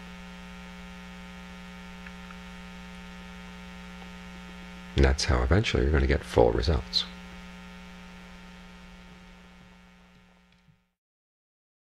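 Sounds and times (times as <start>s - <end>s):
electrical hum: 0.0s - 10.9s.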